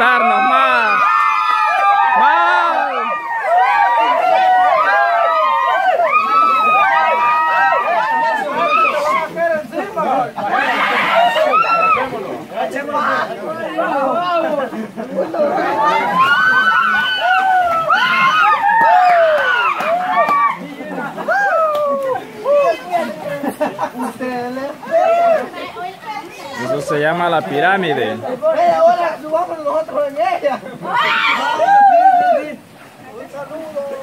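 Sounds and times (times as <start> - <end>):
water splashing: 0.0 - 34.0
young people talking and calling out: 0.0 - 34.0.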